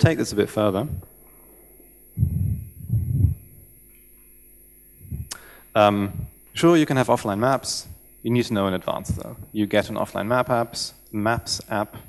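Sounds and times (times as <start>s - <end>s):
man humming into microphone: 0.0s - 1.2s, 2.1s - 3.6s, 5.0s - 6.4s, 8.9s - 9.6s, 11.3s - 12.0s
sound system hum: 0.0s - 12.0s.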